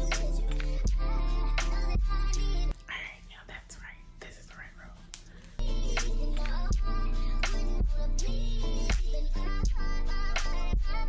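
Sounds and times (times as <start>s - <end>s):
woman speaking softly: 2.9s - 5.0s.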